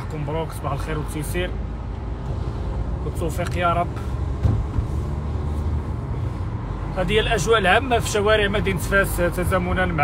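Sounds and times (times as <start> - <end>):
car cabin rumble: 1.6 - 6.3
brief thump: 4.4 - 4.9.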